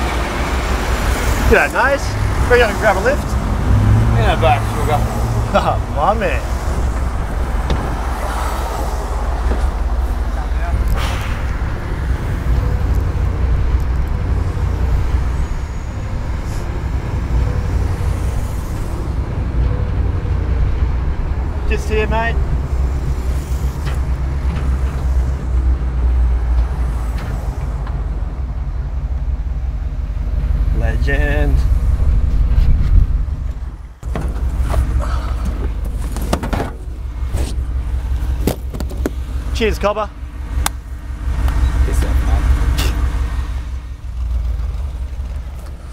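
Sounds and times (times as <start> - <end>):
pickup truck engine rumble: 0.0 - 45.9
road noise: 0.0 - 45.9.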